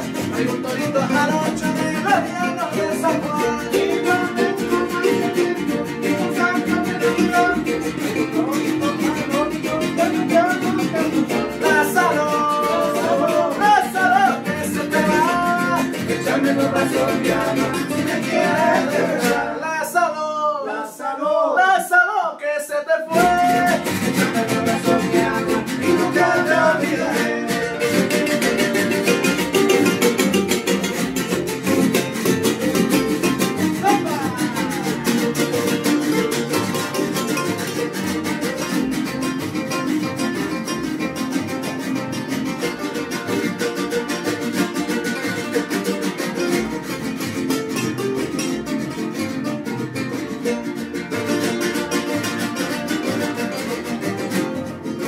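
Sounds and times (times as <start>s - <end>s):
plucked string melody: 0.0s - 19.7s, 23.1s - 55.0s
strummed guitars: 0.0s - 20.0s, 23.1s - 55.0s.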